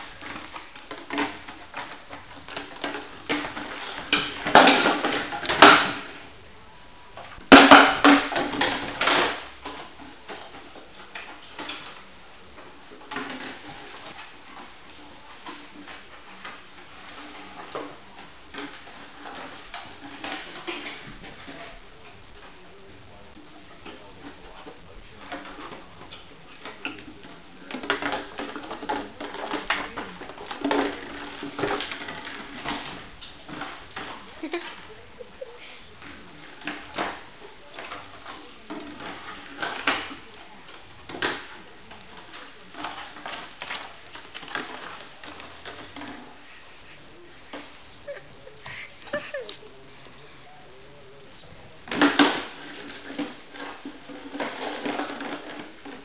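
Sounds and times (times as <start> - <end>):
plastic bottle clattering on floor: 0.0 - 6.4, 7.2 - 22.8, 23.4 - 49.7, 51.8 - 56.0
puppy chewing plastic bottle: 0.0 - 56.0.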